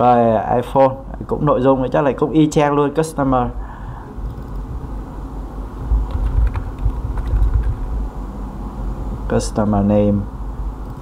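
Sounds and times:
keyboard typing clicks: 6.1s - 7.8s.

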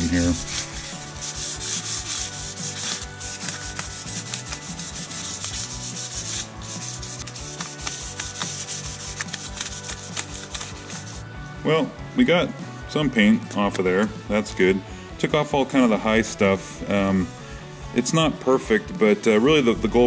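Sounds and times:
sandpaper rubbing on paint: 0.0s - 11.3s.

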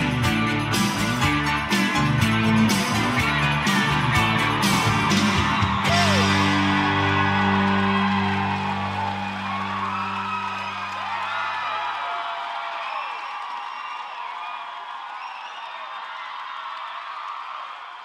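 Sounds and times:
band chord ringing: 0.0s - 10.8s
crowd cheering with whoops: 2.6s - 18.0s.

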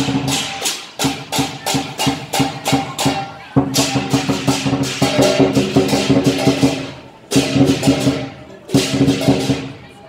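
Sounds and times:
hand cymbals crashing: 0.0s - 9.8s
drum strikes: 0.0s - 10.0s.

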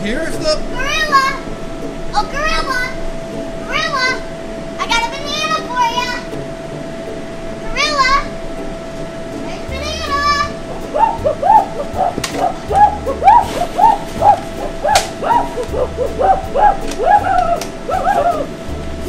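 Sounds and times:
background music with low bass: 0.0s - 19.0s
person imitating gorilla hoots: 11.0s - 18.5s.

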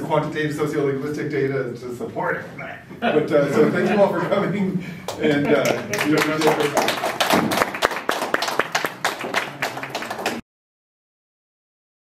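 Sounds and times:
audience applauding: 5.1s - 10.4s.

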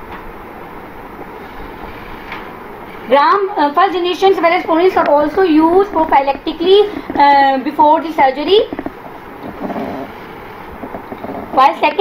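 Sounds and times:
microphone hiss: 0.0s - 12.0s.

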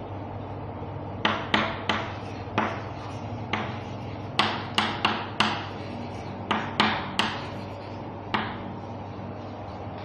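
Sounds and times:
chalk tapping on chalkboard: 1.2s - 10.0s.

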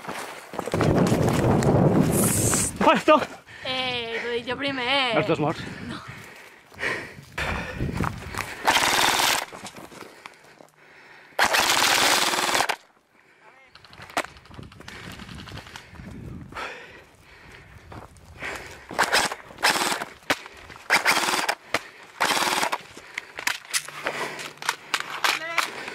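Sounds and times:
airsoft rifle firing bursts: 8.6s - 9.5s, 11.4s - 12.8s, 19.0s - 20.1s, 20.9s - 21.6s, 22.2s - 22.9s.

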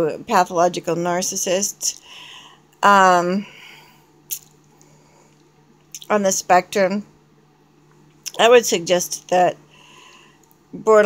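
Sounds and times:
faint low hum: 0.0s - 11.0s
mouth clicks and lip smacks: 4.3s - 4.6s
person speaking: 10.8s - 11.0s.

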